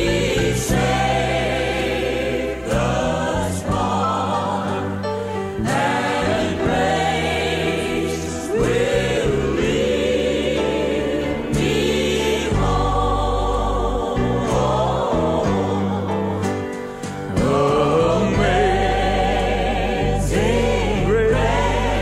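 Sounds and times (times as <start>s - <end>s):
choir singing a hymn: 0.0s - 22.0s
sustained instrumental accompaniment: 0.0s - 22.0s.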